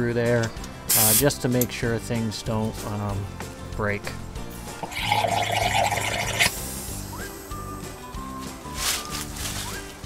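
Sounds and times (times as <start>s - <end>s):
background music with held notes: 0.0s - 10.0s
compressed air hiss: 0.9s - 1.3s, 6.4s - 7.7s.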